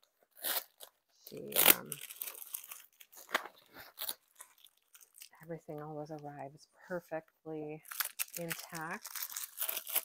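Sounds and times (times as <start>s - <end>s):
packing wrap crinkling: 0.3s - 5.5s, 7.8s - 10.0s.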